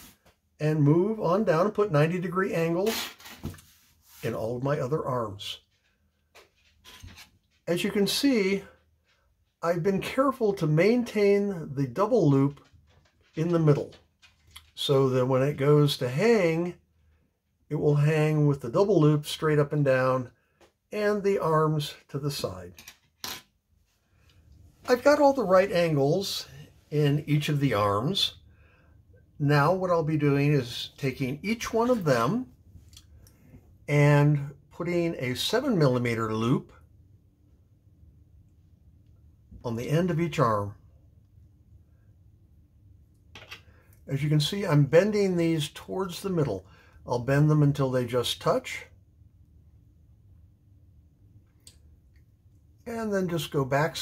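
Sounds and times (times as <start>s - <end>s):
man speaking: 0.0s - 3.2s, 4.1s - 5.7s, 7.6s - 8.8s, 9.6s - 12.7s, 13.3s - 14.0s, 14.6s - 16.8s, 17.7s - 22.8s, 24.8s - 28.4s, 29.3s - 32.6s, 33.8s - 36.8s, 39.5s - 40.9s, 44.0s - 49.0s, 52.8s - 54.0s.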